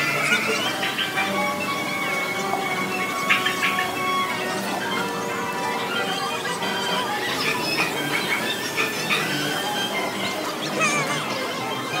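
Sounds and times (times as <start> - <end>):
background music: 0.0 - 12.0
high squealing chirps: 0.0 - 12.0.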